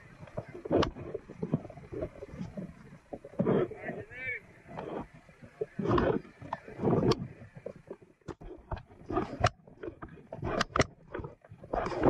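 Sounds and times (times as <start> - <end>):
gusty outdoor noise: 0.0 - 12.0.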